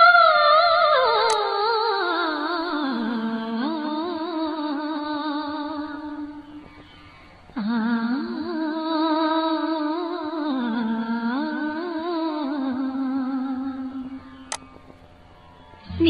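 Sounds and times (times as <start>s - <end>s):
hummed melody: 0.0s - 6.9s, 7.6s - 14.9s, 15.8s - 16.0s.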